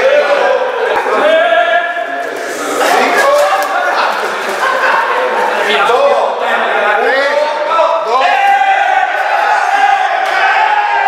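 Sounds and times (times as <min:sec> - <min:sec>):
men laughing: 0:02.8 - 0:06.9.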